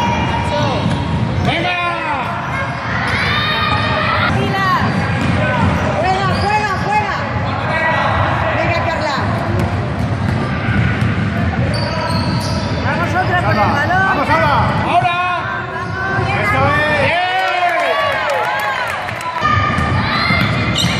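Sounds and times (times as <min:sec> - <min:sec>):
people calling and shouting: 0:00.0 - 0:20.9
basketball bouncing on court: 0:00.2 - 0:02.6, 0:03.2 - 0:07.0, 0:09.1 - 0:13.2, 0:19.4 - 0:20.9.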